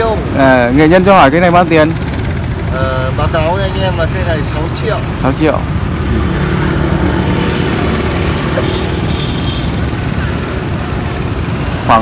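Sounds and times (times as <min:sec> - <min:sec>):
road traffic engine hum: 0:00.0 - 0:12.0.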